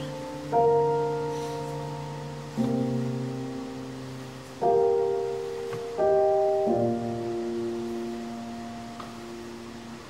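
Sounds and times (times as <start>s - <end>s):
piano chord: 0.0s - 10.0s.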